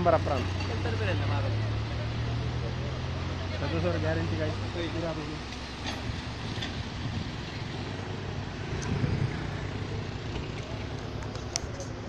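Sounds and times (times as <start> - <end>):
voices talking: 0.0 - 5.8
engine humming: 0.0 - 12.0.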